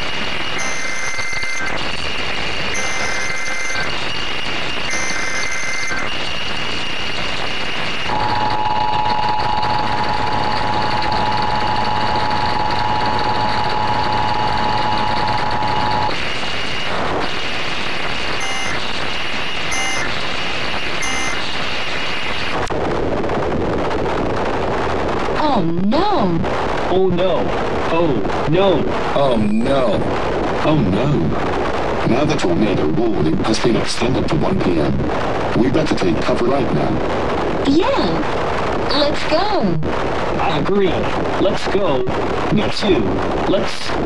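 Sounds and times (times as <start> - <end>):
digital data bursts: 0.0 - 22.7
two-tone attention signal: 0.5 - 1.8, 2.6 - 17.4, 18.3 - 20.2, 20.8 - 22.2.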